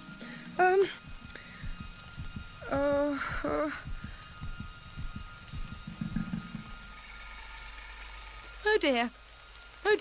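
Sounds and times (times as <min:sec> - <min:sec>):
low steady hum: 0:00.0 - 0:10.0
heartbeat thumps: 0:00.6 - 0:07.0.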